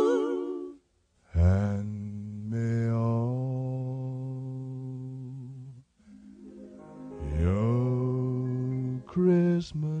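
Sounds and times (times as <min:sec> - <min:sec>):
man singing low note: 0:01.3 - 0:05.8, 0:07.2 - 0:10.0.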